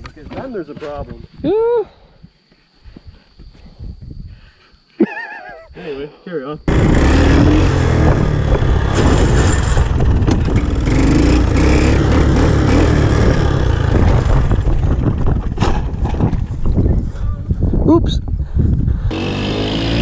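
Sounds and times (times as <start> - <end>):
three-wheeler engine running: 6.7 - 16.1, 19.1 - 20.0
wind rushing over microphone: 6.7 - 19.2.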